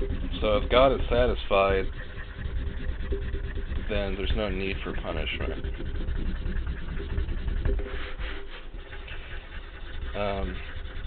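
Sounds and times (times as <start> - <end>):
marker rubbing on paper: 0.0 - 11.0
steady low hum: 0.0 - 11.0.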